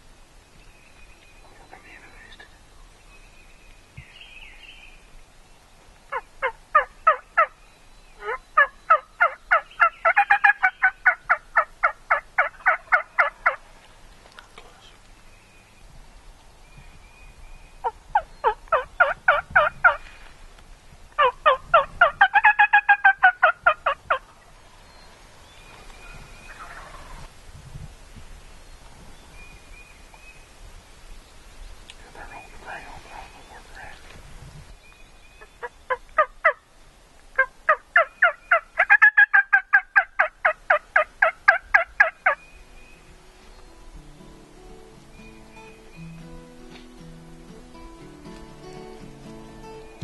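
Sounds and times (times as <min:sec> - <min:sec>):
wild turkey calling: 0:06.0 - 0:13.9, 0:17.8 - 0:20.1, 0:21.2 - 0:24.7, 0:25.7 - 0:27.3, 0:35.2 - 0:36.7, 0:37.3 - 0:42.4.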